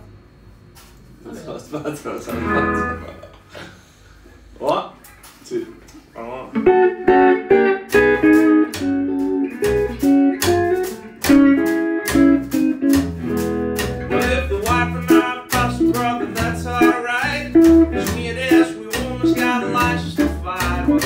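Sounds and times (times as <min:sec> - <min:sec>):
electric guitar bluesy line: 0:02.3 - 0:03.2, 0:06.5 - 0:21.0.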